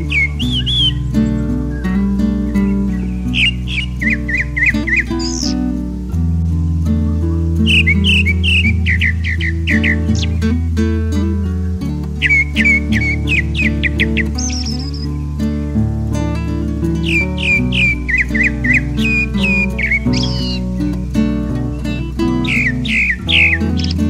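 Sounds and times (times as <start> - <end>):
thrush singing: 0.0 - 5.6, 7.6 - 10.6, 11.6 - 15.4, 16.4 - 24.0
background music: 0.0 - 24.0.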